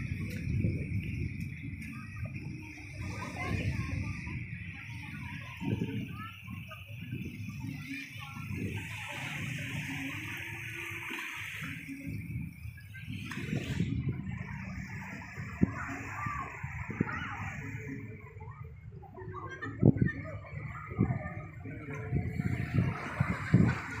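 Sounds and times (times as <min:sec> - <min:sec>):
waves washing onto beach: 0:00.0 - 0:24.0.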